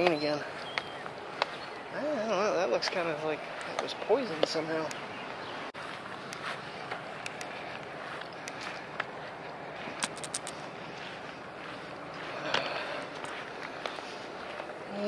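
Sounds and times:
footsteps through grass and mulch: 0.0s - 15.0s
light clicks: 6.3s - 7.6s, 10.0s - 10.6s.

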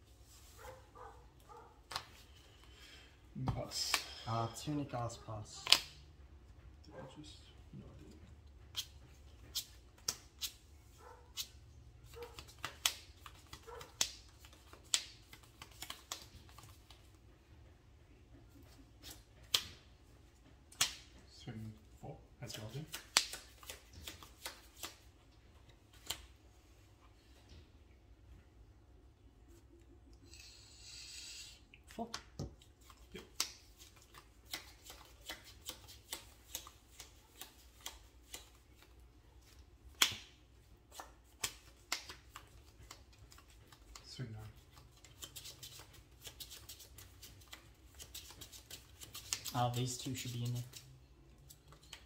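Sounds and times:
cards shuffling: 11.4s - 17.2s, 22.4s - 25.1s, 32.6s - 40.2s, 40.9s - 52.0s.

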